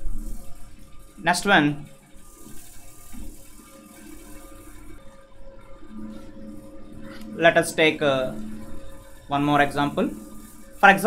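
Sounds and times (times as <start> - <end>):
steady electrical hum: 0.0 - 11.0
person speaking: 1.2 - 1.9, 7.4 - 8.4, 9.3 - 10.2, 10.8 - 11.0.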